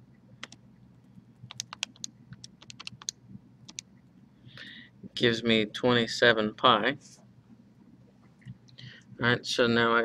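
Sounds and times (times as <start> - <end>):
calculator buttons clicking: 1.5 - 3.8.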